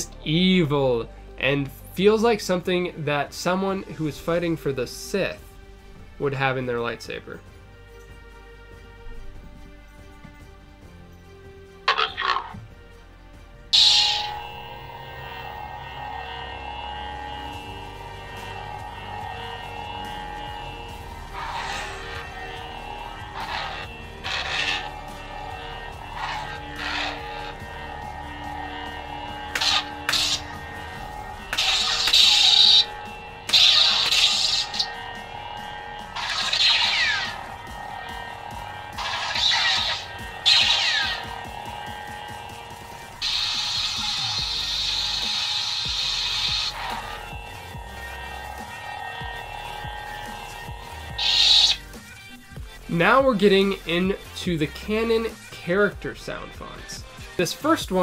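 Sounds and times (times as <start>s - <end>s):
lightsaber electronic hum: 0.0s - 7.1s, 11.9s - 12.9s, 13.7s - 57.7s
background music: 0.0s - 58.0s
sharp lightsaber burst: 13.8s - 52.1s.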